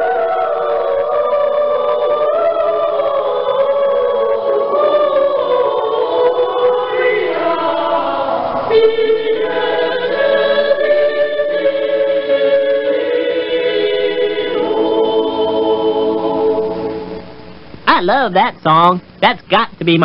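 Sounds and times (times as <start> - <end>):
choir singing a carol: 0.0 - 17.4.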